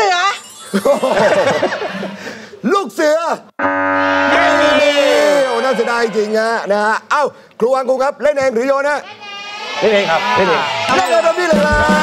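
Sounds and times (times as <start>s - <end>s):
game show buzzer: 3.6s - 6.6s.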